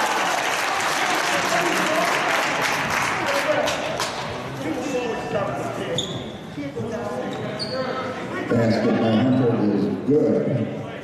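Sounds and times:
sneaker squeaks: 5.8s - 8.1s.

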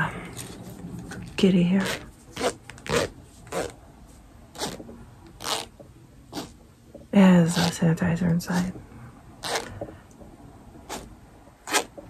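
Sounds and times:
plush toy rustling scratches: 0.4s - 6.6s, 7.4s - 7.8s, 9.4s - 9.8s, 10.8s - 12.0s.

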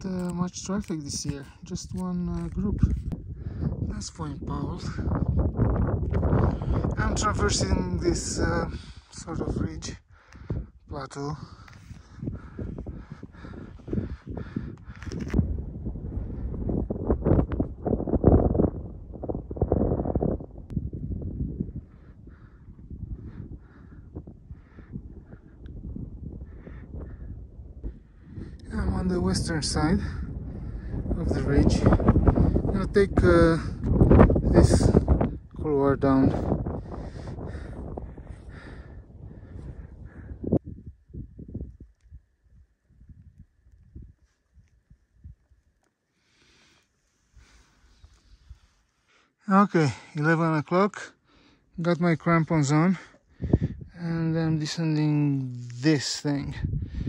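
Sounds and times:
wind rumbling on microphone: 0.0s - 48.9s, 51.6s - 57.0s.

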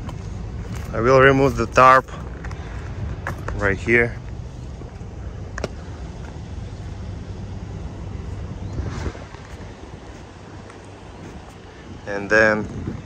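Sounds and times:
diesel truck engine idling: 0.0s - 13.0s
wind on microphone: 8.5s - 13.0s.

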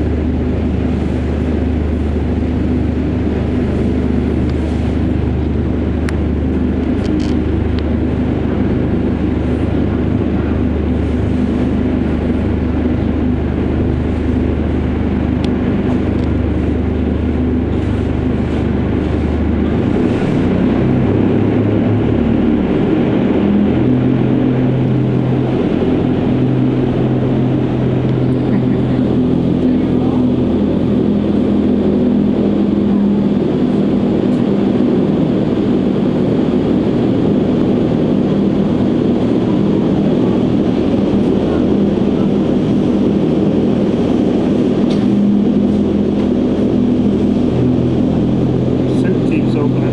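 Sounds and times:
wind tunnel fans rushing air: 0.0s - 49.9s.

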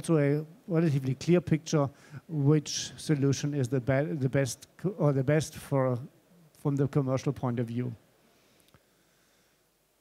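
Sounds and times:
faint click: 8.6s - 8.8s.

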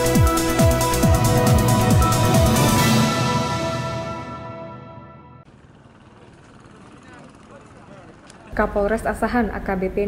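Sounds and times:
distant voices: 5.5s - 9.0s.

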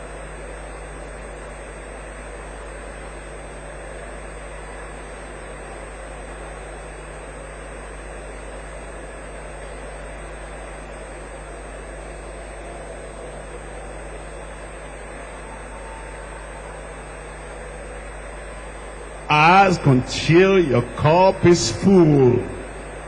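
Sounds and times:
large hall background noise: 11.4s - 23.0s
low hum: 19.3s - 23.0s.

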